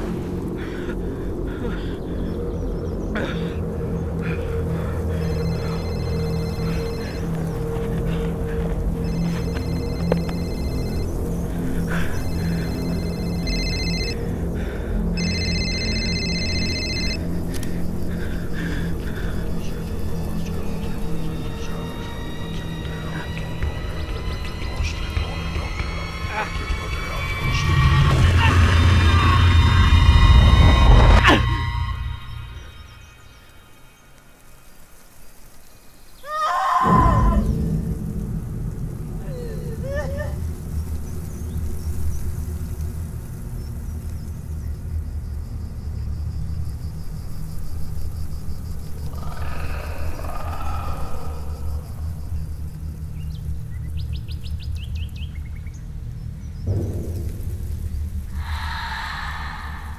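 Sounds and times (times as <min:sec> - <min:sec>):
steady low drone: 0:00.0 - 0:34.5, 0:36.8 - 0:59.9.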